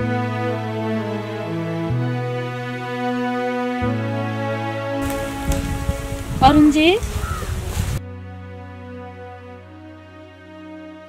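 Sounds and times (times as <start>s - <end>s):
low crackles and rustles: 5.0s - 8.0s.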